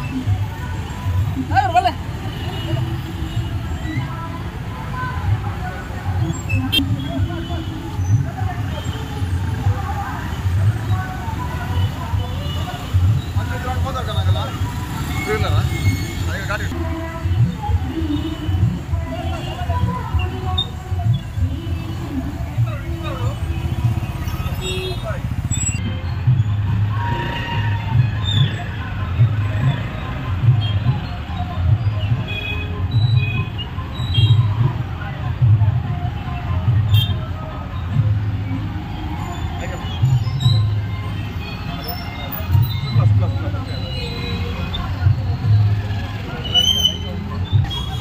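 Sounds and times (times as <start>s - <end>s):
motorcycle engines rumbling: 0.0s - 48.0s
voices: 0.0s - 48.0s
scooters and vans passing: 7.8s - 18.0s, 18.8s - 32.6s, 33.6s - 48.0s.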